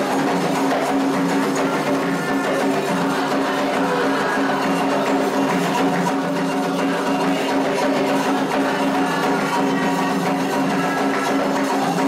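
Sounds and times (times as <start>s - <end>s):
hand drums: 0.0s - 12.0s
struck bell rhythm: 0.0s - 12.0s
sung chanting: 0.0s - 12.0s.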